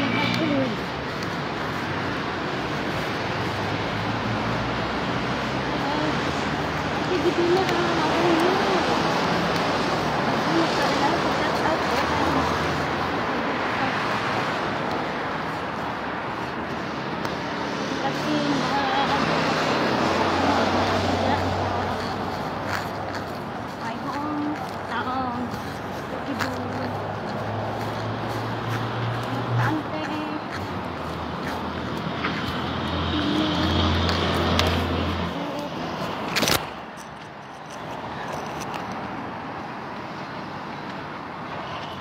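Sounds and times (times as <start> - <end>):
passing vehicle engine hum: 0.0 - 42.0
road traffic noise: 0.0 - 42.0.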